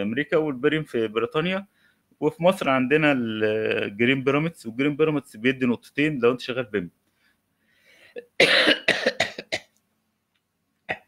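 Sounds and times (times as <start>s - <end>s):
man coughing: 8.2s - 9.7s.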